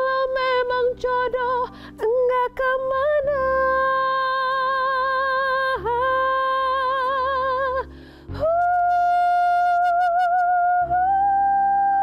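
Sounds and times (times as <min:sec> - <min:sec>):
breath: 0:01.7 - 0:02.0, 0:07.9 - 0:08.4.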